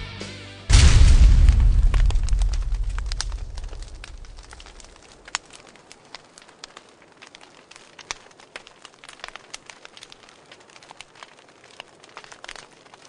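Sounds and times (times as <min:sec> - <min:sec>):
low steady hiss: 0:00.7 - 0:12.1
faint irregular crackling: 0:00.7 - 0:13.0.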